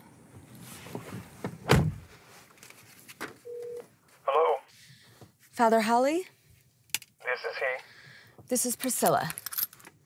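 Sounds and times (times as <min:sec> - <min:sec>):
telephone tone: 0:03.5 - 0:03.8
voice over phone line: 0:04.3 - 0:04.7, 0:07.2 - 0:07.8.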